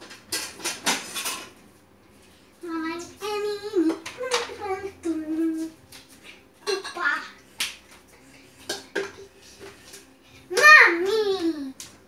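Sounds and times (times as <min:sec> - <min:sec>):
young child singing: 0:02.6 - 0:05.8, 0:10.5 - 0:11.8.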